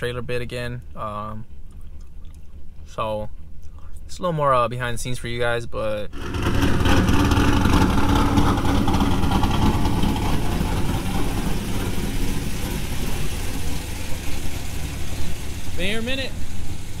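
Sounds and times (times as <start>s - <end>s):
vehicle engine idling: 6.1s - 17.0s.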